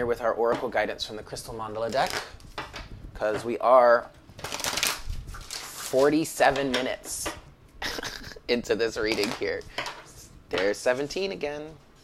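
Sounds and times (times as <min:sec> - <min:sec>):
cards being shuffled: 0:01.8 - 0:02.8, 0:04.2 - 0:06.8.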